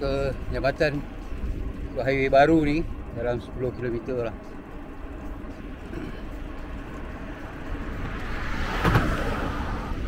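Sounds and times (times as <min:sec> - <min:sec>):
road rumble: 0:00.0 - 0:10.0
vehicle passing close: 0:06.5 - 0:10.0.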